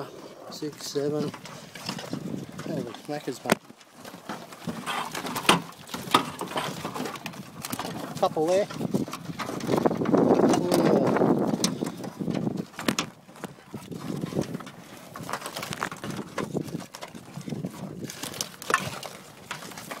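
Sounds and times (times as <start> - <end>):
handling rustle: 0.0 - 20.0
crabs clattering in a pot: 0.9 - 20.0.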